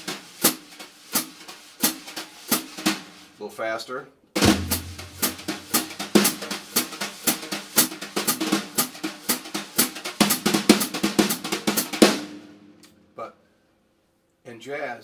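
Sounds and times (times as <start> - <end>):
wire brushes on snare drum: 0.0 - 3.5, 4.4 - 12.6
bass drum note: 4.4 - 6.1.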